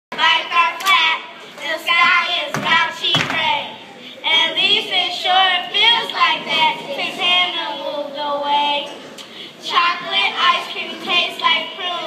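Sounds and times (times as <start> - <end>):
girls singing together: 0.1 - 12.0.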